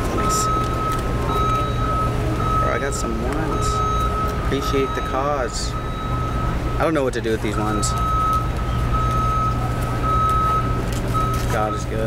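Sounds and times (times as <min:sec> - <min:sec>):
low engine rumble: 0:00.0 - 0:12.0
reversing alarm beeping: 0:00.0 - 0:12.0.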